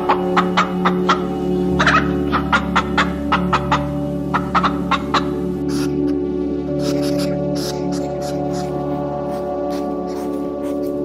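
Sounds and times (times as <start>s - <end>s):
hen clucking: 0.0s - 10.7s
background music with held tones: 0.0s - 11.0s.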